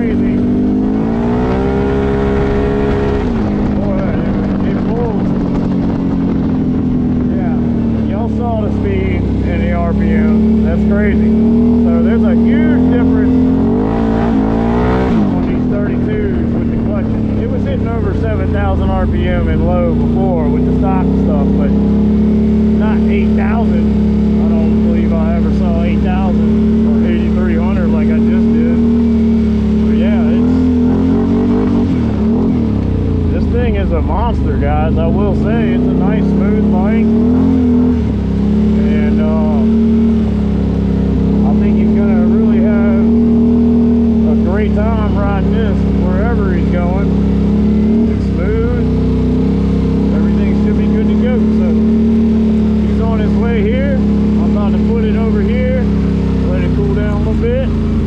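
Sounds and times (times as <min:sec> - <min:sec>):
quad bike engine running: 0:00.0 - 0:58.0.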